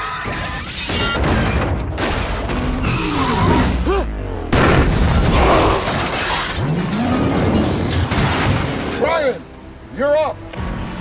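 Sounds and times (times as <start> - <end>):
debris and glass clattering: 4.9 - 9.4.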